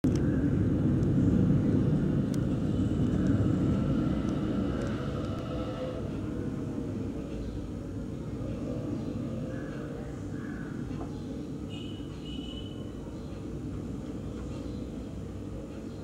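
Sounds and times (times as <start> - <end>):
low steady rumbling: 0.0 - 10.7.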